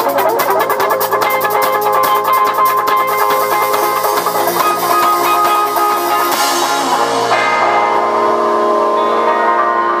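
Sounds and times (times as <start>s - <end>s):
live band holding a chord: 0.0s - 10.0s.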